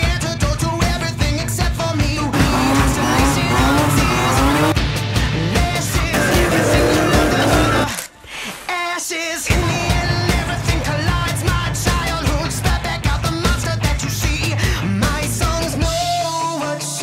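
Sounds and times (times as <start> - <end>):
rock music: 0.0 - 8.1, 9.5 - 17.0
car engine revving hard: 2.3 - 4.8, 5.4 - 7.9
tyres squealing: 2.4 - 4.8, 6.1 - 8.2.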